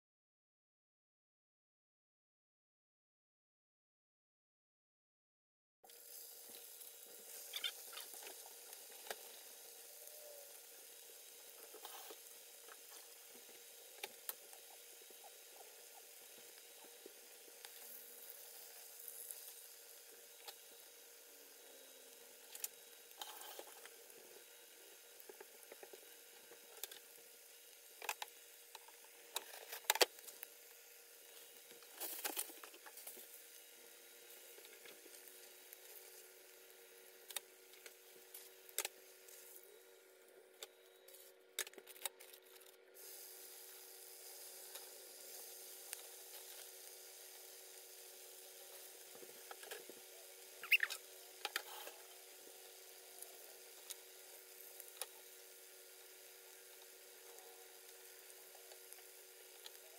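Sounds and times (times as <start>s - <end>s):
oil popping and crackling: 5.9s - 9.9s, 10.5s - 20.8s, 21.6s - 39.6s, 41.6s - 59.9s
food sizzling in hot oil: 5.9s - 40.4s, 43.0s - 59.9s
faint steady hum: 5.9s - 59.9s.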